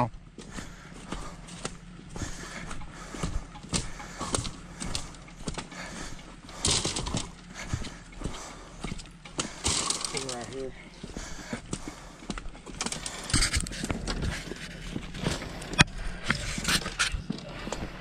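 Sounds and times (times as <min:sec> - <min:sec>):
footsteps on gritty path: 0:00.2 - 0:18.0.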